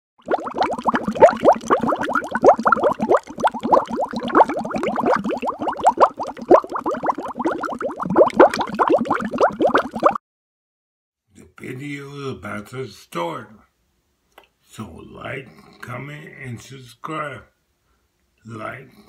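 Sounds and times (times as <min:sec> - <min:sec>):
bubbling plopping blips: 0:00.2 - 0:10.2.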